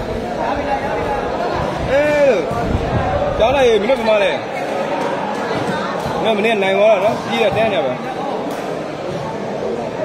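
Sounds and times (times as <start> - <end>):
crowd murmur in a hall: 0.0 - 10.0.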